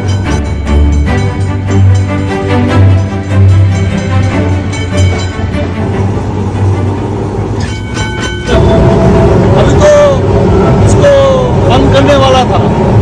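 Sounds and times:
background music: 0.0s - 13.0s
tram running on rails: 0.0s - 13.0s.

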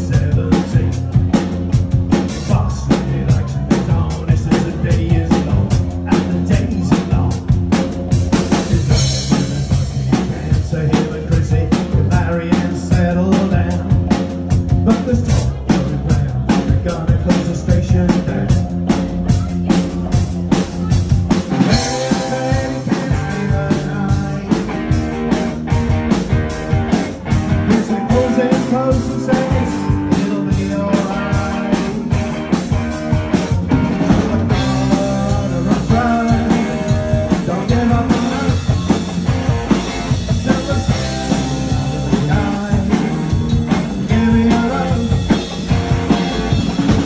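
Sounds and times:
bass guitar: 0.0s - 47.0s
drum kit beat: 0.0s - 47.0s
electric guitar: 0.0s - 47.0s.

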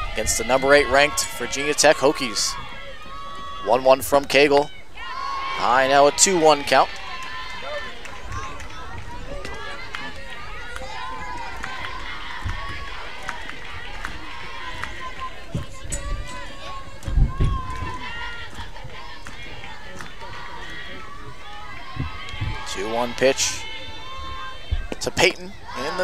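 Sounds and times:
crowd chattering and calling out: 0.0s - 26.0s
low thumps: 15.4s - 18.0s, 21.9s - 22.7s, 24.2s - 25.1s.

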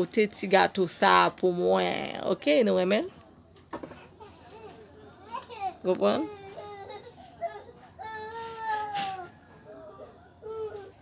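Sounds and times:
young child crying: 6.4s - 11.0s.

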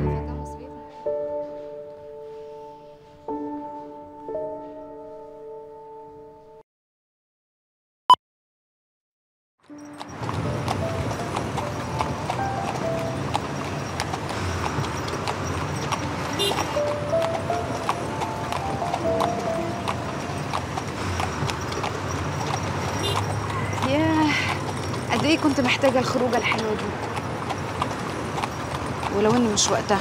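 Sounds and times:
street traffic: 0.0s - 6.2s, 9.6s - 30.0s
music playing: 0.0s - 6.6s, 16.2s - 20.7s
horse hooves clip-clopping on road: 9.6s - 30.0s.

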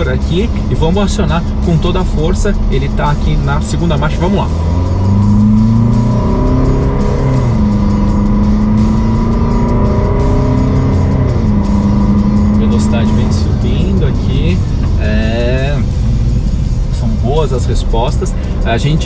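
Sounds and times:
diesel engine accelerating: 0.0s - 19.0s.

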